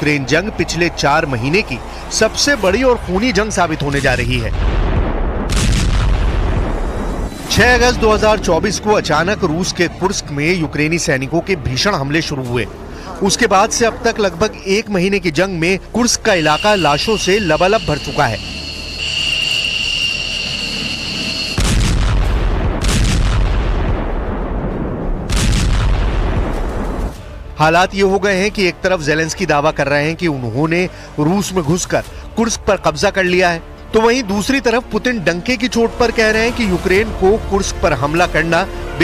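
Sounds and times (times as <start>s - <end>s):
sharp blast: 3.9s - 8.6s, 16.4s - 27.3s
deep rumble: 4.0s - 9.4s, 20.3s - 27.6s
high-pitched ringing tone: 16.4s - 21.6s
heavy low rumble of artillery: 21.3s - 27.6s.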